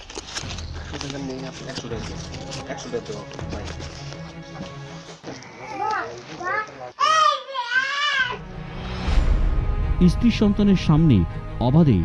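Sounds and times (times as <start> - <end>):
child calling: 5.6 - 8.4.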